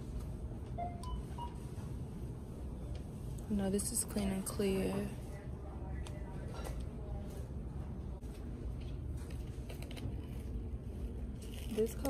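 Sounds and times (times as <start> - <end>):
low hum of shop noise: 0.0 - 12.0
faint electronic beeps: 0.7 - 2.0.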